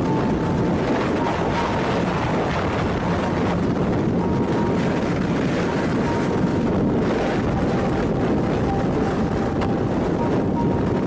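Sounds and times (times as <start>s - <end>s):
strong wind buffeting microphone: 0.0s - 11.0s
faint high tone: 7.4s - 10.9s.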